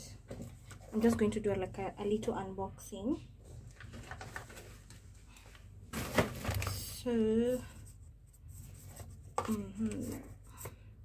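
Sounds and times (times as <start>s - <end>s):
plastic bag rustling: 3.6s - 5.2s, 5.8s - 7.0s.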